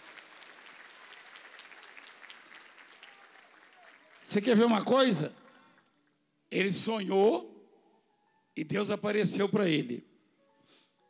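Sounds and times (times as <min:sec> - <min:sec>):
congregation clapping: 0:00.0 - 0:06.2.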